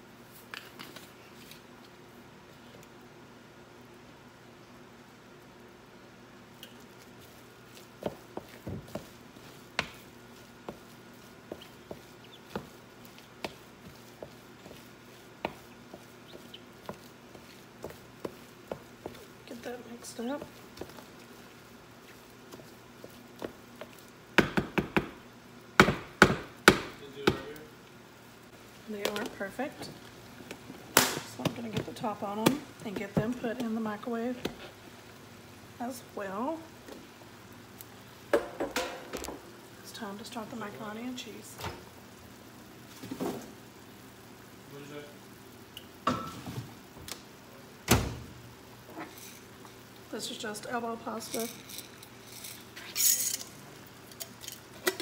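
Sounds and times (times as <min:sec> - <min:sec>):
light kitchen knocks and clatters: 0:08.0 - 0:09.2, 0:24.4 - 0:25.2, 0:29.0 - 0:33.8, 0:38.3 - 0:39.5, 0:42.9 - 0:43.6, 0:46.0 - 0:47.1.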